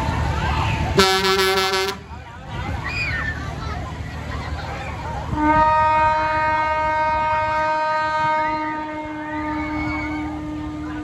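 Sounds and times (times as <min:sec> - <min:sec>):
horn long steady note: 0:01.0 - 0:02.1, 0:05.3 - 0:11.0.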